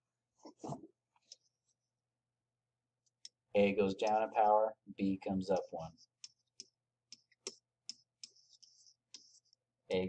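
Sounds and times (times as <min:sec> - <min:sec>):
stylus tapping on tablet: 0:05.5 - 0:09.6
stylus scratching strokes: 0:05.6 - 0:09.7.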